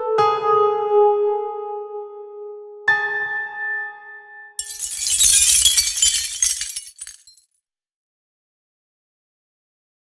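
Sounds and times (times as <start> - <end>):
glass shards clinking: 4.6 - 7.4.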